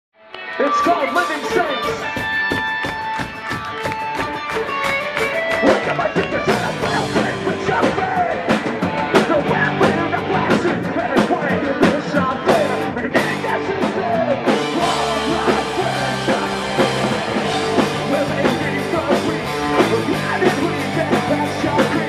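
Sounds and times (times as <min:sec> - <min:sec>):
punk rock band playing: 0:00.2 - 0:22.0
driving drum beat: 0:00.8 - 0:22.0
lead vocal singing: 0:05.6 - 0:22.0.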